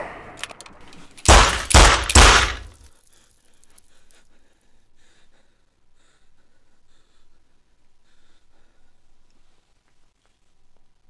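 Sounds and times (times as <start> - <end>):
loud heavy bangs: 0.0 - 2.8.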